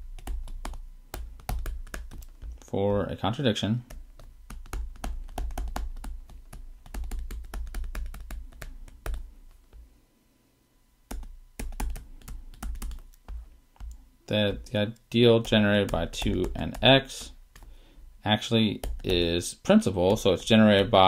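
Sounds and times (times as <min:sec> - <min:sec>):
stylus tapping on tablet screen: 0:00.0 - 0:02.7, 0:03.9 - 0:09.9, 0:11.1 - 0:14.7, 0:15.4 - 0:17.8, 0:18.8 - 0:19.3.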